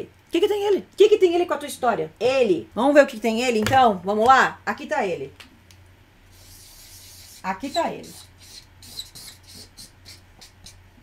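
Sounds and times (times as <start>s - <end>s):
marker scratching on paper: 6.3s - 10.8s.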